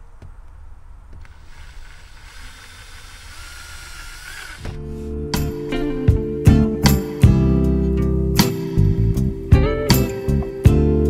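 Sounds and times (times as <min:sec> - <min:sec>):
cordless drill drilling into plastic: 0:01.2 - 0:04.8
strummed acoustic guitar music: 0:04.8 - 0:11.0.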